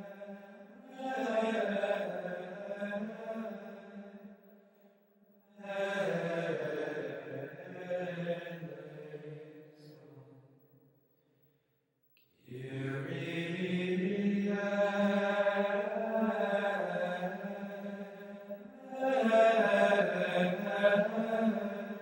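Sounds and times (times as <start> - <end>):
chanted vocal music: 0.0 - 10.5, 12.4 - 22.0.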